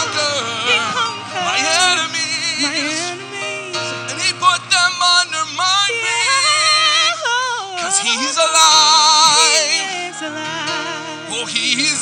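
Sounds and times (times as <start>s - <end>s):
person singing with ornamented runs: 0.0s - 12.0s
sustained keyboard chords: 0.0s - 12.0s.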